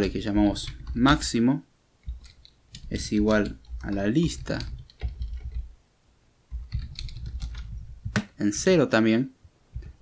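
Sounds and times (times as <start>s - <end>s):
typing on computer keyboard: 0.0s - 1.2s, 2.0s - 5.7s, 6.5s - 8.3s.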